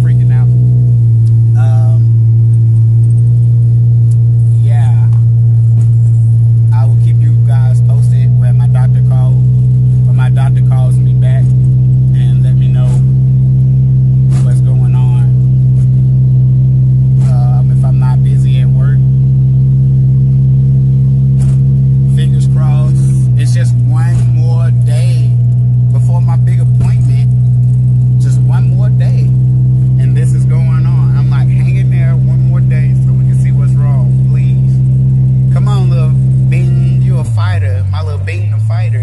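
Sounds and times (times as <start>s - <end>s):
man talking: 0.0s - 0.6s, 1.5s - 2.2s, 4.6s - 5.2s, 6.7s - 13.2s, 14.3s - 15.4s, 17.2s - 19.1s, 22.0s - 27.4s, 28.1s - 39.0s
low hum inside car cabin: 0.0s - 39.0s.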